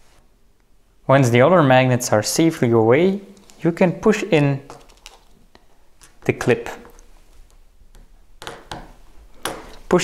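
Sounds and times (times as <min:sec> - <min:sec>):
man talking: 0:01.1 - 0:04.8, 0:06.2 - 0:07.0.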